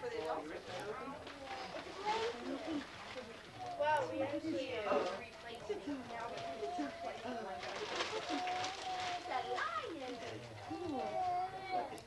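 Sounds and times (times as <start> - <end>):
rustling: 0.6 - 11.3.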